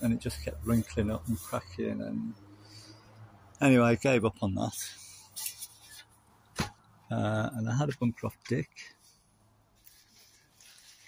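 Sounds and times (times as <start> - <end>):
soft rustle: 0.0 - 1.8, 4.8 - 6.3, 8.8 - 11.0.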